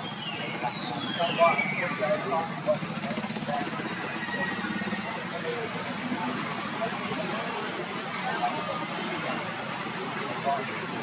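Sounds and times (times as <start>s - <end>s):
murmur of chatter: 0.0s - 11.0s.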